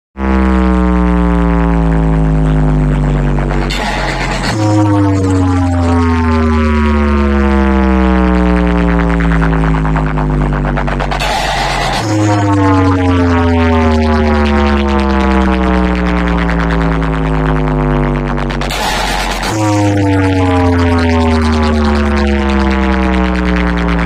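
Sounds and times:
deep bass drone: 0.0s - 24.0s
buzzy tone sliding down in pitch: 0.2s - 24.0s.

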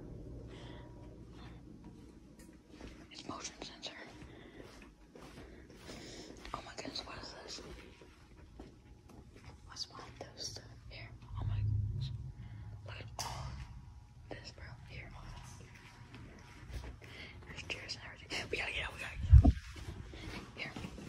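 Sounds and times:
people whispering: 9.7s - 12.2s, 14.3s - 15.7s.

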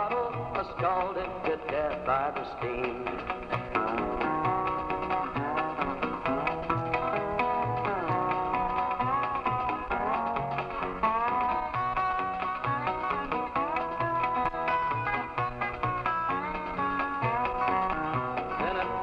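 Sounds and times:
guitar: 0.0s - 19.0s
lead line with sliding notes: 3.0s - 19.0s.

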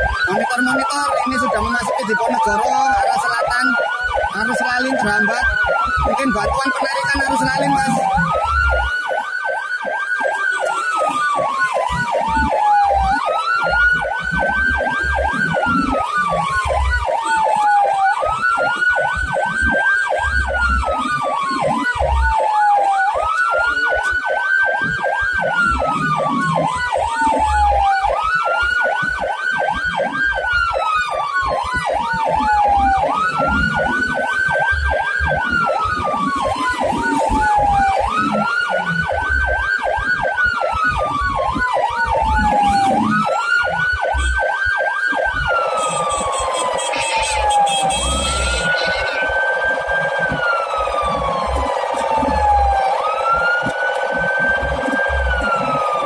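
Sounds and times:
fast pulsing siren tone: 0.0s - 56.0s
siren wailing: 0.0s - 56.0s.

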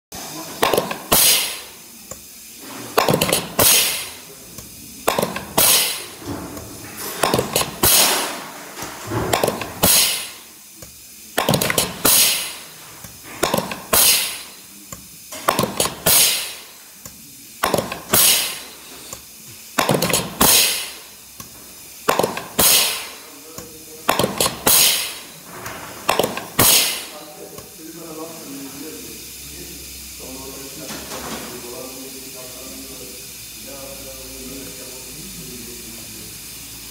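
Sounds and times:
air hiss bursts: 0.2s - 36.9s
sharp metallic clack: 5.1s - 8.5s.

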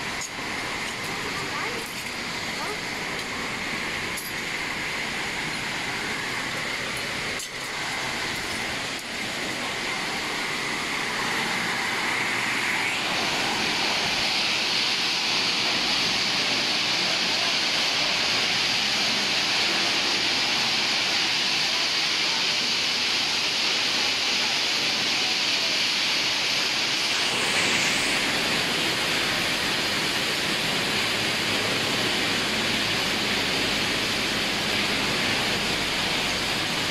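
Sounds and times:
hissing machinery noise: 0.0s - 36.9s.

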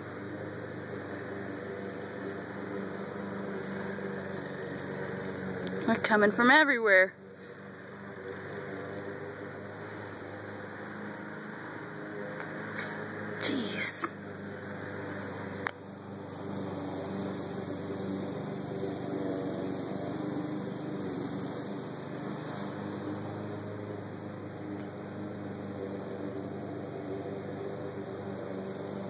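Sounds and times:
low mechanical hum: 0.0s - 29.0s.

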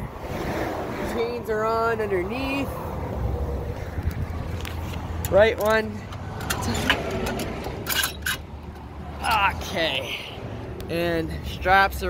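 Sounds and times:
road noise: 0.0s - 12.0s
vehicle engine: 0.0s - 12.0s
ratchet strap clicks and knocks: 4.6s - 9.4s.

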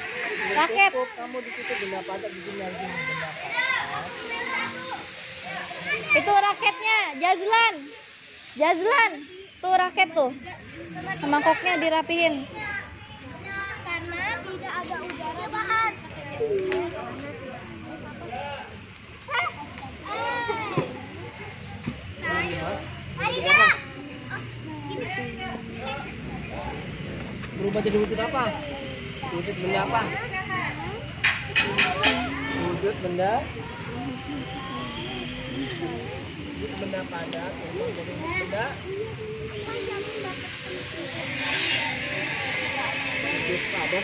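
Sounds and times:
children talking and calling out: 0.0s - 44.0s
child shouting: 2.9s - 5.0s, 19.3s - 20.7s, 23.2s - 26.0s.

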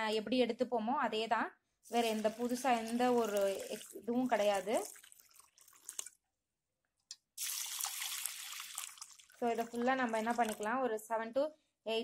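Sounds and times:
water pouring into bowls: 1.9s - 6.2s, 7.4s - 10.8s.

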